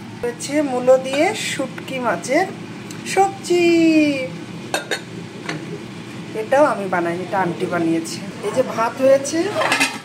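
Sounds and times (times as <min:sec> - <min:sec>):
dishes and lids clinking: 0:04.7 - 0:05.6, 0:09.4 - 0:10.0.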